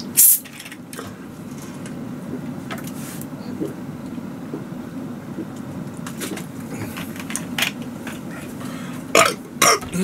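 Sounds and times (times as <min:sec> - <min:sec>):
man burping: 0:09.1 - 0:10.0.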